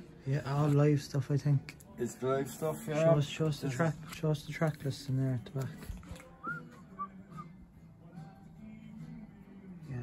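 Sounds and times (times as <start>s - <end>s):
soft whistled notes: 6.4s - 7.6s.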